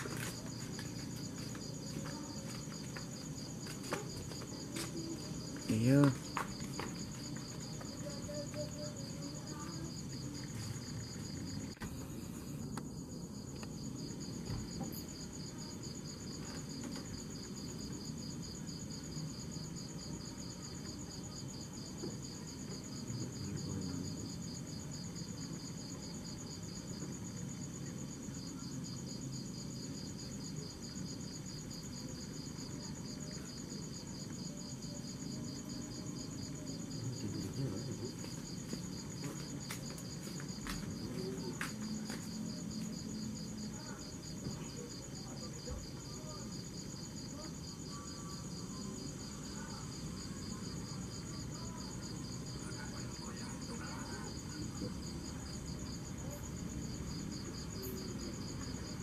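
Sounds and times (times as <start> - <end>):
crickets chirping: 0.0 - 59.0.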